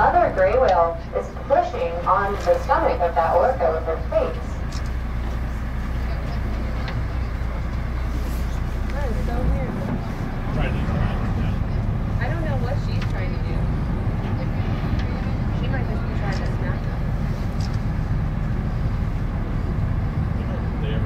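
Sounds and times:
faint voices: 0.0s - 17.8s
boat engine rumbling: 0.0s - 21.0s.

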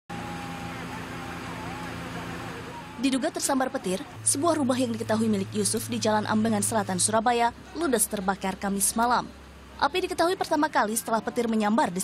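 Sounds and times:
engines humming: 0.1s - 12.0s
faint distant voices: 0.1s - 12.0s.

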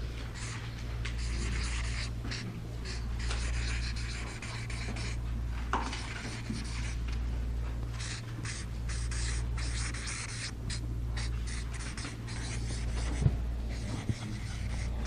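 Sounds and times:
steady low hum: 0.0s - 15.0s
marker pen scratching on paper: 0.4s - 5.2s, 5.9s - 7.0s, 8.0s - 15.0s.

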